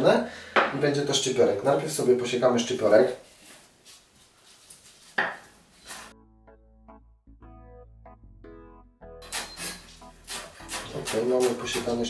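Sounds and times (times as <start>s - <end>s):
faint handling sounds: 2.8s - 6.1s
soft keyboard music: 6.1s - 12.0s.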